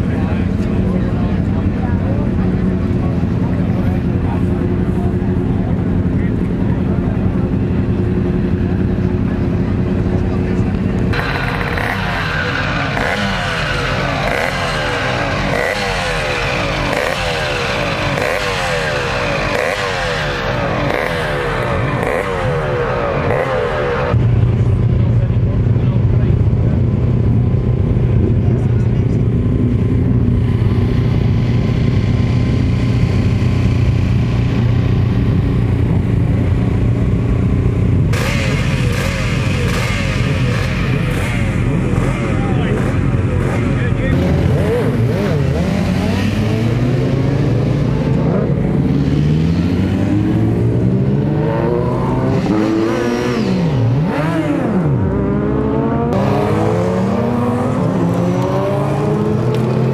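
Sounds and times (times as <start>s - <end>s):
racing engines revving and accelerating: 0.0s - 24.6s, 37.6s - 59.9s
motorcycle engines idling: 0.0s - 55.2s
sidecar engines: 0.0s - 59.9s.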